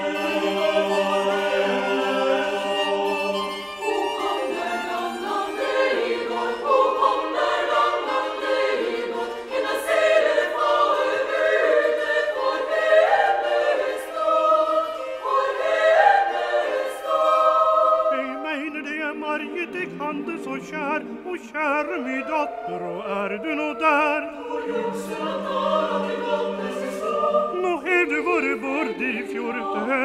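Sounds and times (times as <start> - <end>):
choir singing: 0.0 - 30.0.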